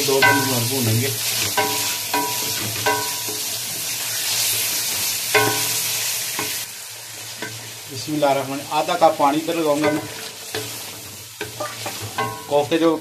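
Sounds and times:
meat sizzling in a pan: 0.0 - 13.0
wooden spatula knocking on pan: 1.4 - 3.4, 5.4 - 5.7, 11.4 - 12.7.

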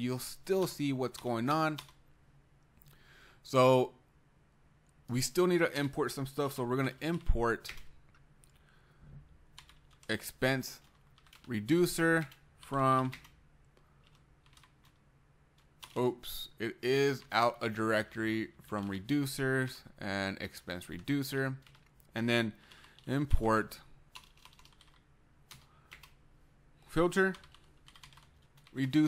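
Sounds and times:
computer keyboard keystrokes: 9.6 - 10.1, 10.8 - 11.5, 13.0 - 15.0, 24.1 - 26.2, 27.3 - 29.0.

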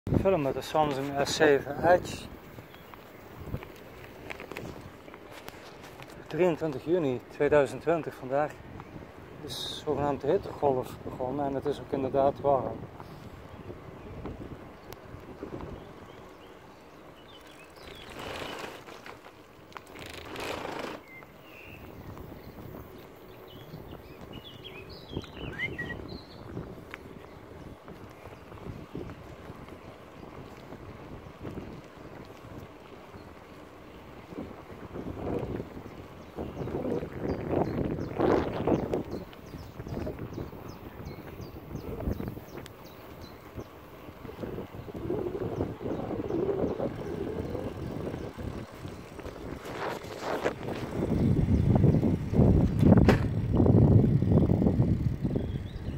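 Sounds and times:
wind rushing over microphone: 0.1 - 19.2, 19.9 - 55.9
bicycle rolling noise: 0.1 - 55.9.

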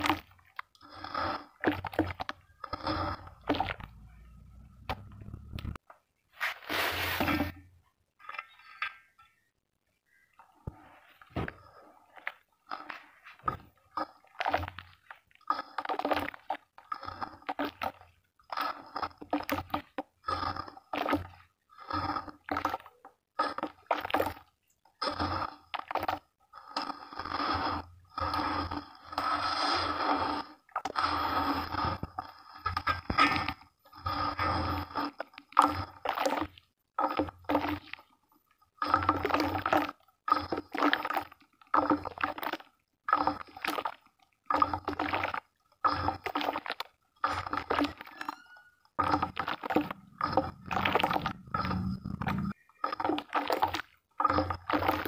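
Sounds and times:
hands squelching wet mud: 38.8 - 48.4, 49.0 - 55.0.

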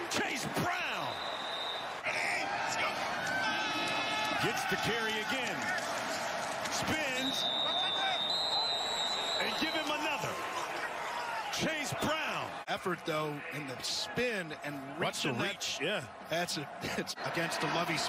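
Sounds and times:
players shouting: 0.0 - 18.0
referee's whistle blast: 0.8 - 2.0, 7.1 - 10.2.

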